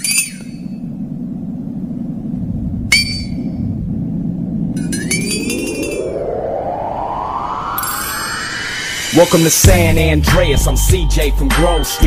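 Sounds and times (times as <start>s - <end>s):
low rumble: 0.5s - 11.0s
rising swell: 1.0s - 10.6s.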